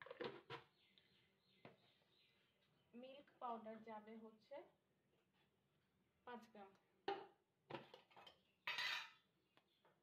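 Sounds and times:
spoon scraping a bowl: 8.7s - 9.2s.

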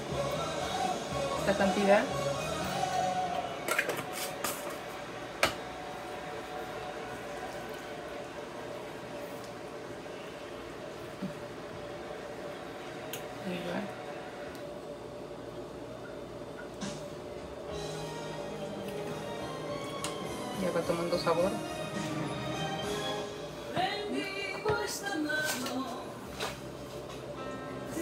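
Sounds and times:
steady background hum: 0.0s - 28.0s.

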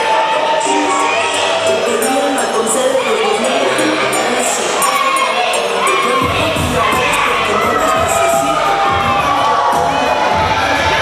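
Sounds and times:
children's voices: 0.0s - 11.0s
crowd cheering and shouting: 0.0s - 11.0s.

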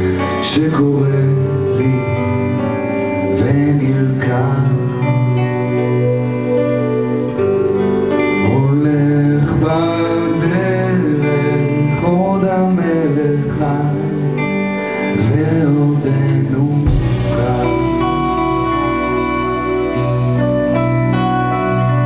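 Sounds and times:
man singing: 0.0s - 6.1s, 8.3s - 19.8s
guitar: 0.0s - 22.0s
keyboard: 0.0s - 22.0s.

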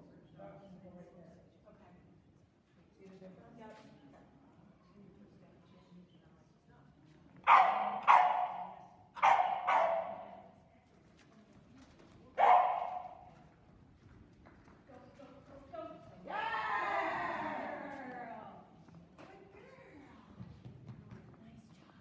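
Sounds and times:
small dog barking: 7.4s - 10.4s, 12.4s - 13.2s.

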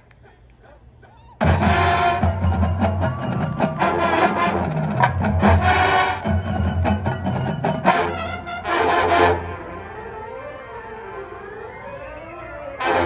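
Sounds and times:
heavy drum hits: 1.4s - 7.5s
marching band playing: 1.4s - 13.0s.

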